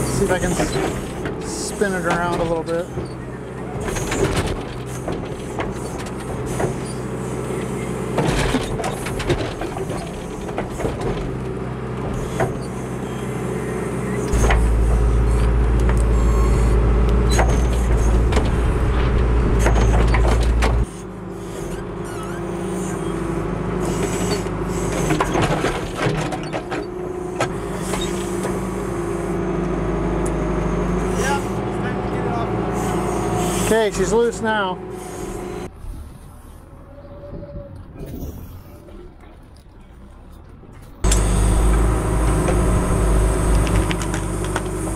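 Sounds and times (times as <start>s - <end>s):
diesel engine under load: 0.0s - 44.9s
deep loud rumble: 14.4s - 20.9s.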